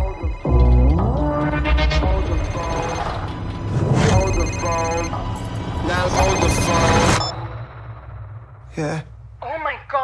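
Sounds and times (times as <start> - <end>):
low film score rumble: 0.0 - 10.0
phone electronic ringtone: 4.0 - 7.4
man's voice: 8.7 - 9.2.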